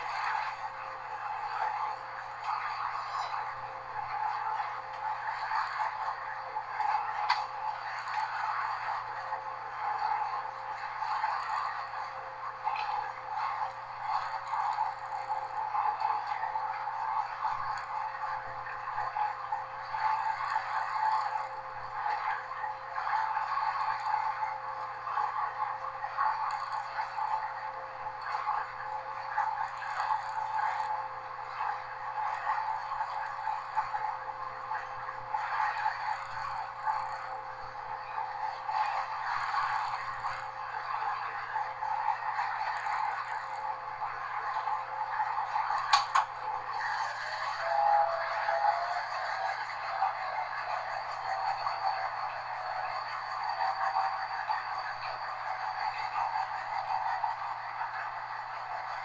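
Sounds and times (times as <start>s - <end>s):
train engine hum: 0.0s - 59.0s
wavering whine: 0.0s - 59.0s
wheels on rail: 0.0s - 59.0s
sharp click: 45.8s - 46.3s.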